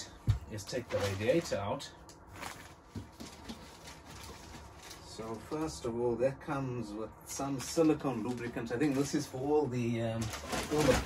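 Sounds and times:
rummaging in cardboard box: 0.5s - 5.8s, 10.1s - 11.0s.

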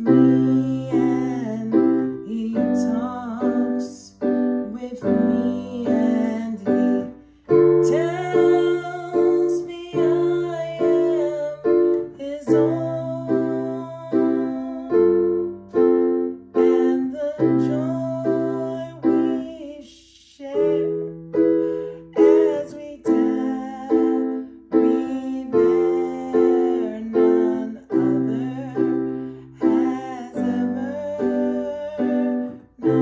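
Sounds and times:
digital piano chords: 0.0s - 19.9s, 20.5s - 33.0s
woman singing: 0.0s - 33.0s.

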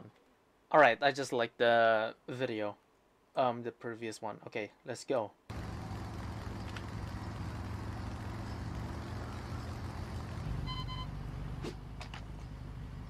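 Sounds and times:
motorcycle engine running: 5.5s - 13.0s
short high beep: 10.6s - 11.1s.

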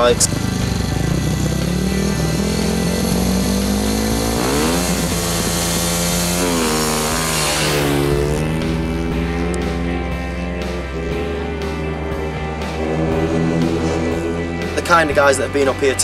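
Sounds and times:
background music: 0.0s - 16.0s
motorcycle engine revving: 0.0s - 16.0s.

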